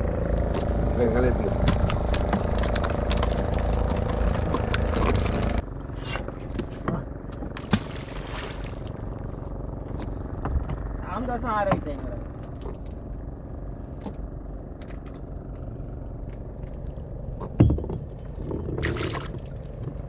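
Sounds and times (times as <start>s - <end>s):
boat engine idling: 0.0s - 20.0s.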